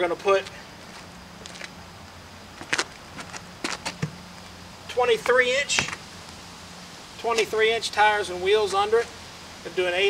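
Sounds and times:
tire knocking and scuffing: 0.1 - 6.4, 7.2 - 7.6.

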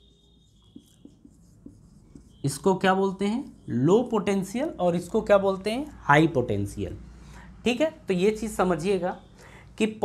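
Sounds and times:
marker pen writing on whiteboard: 0.0 - 5.2.

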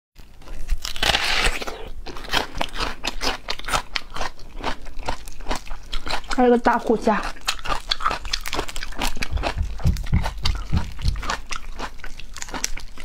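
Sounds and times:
crunching raw onion: 0.2 - 6.4, 7.0 - 13.0.

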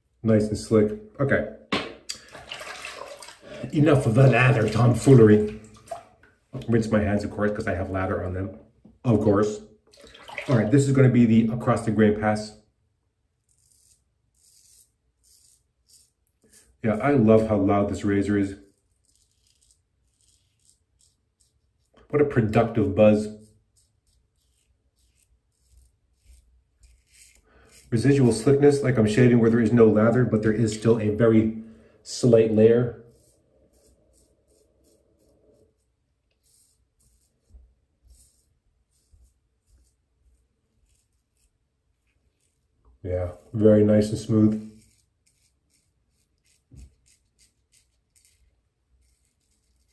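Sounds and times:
razor cutting stubble: 13.4 - 31.4, 32.2 - 49.9.

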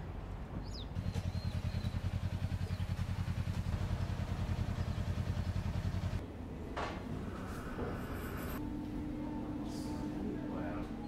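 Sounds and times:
birds chirping: 0.6 - 6.2
vehicle engine idling: 0.8 - 6.2.

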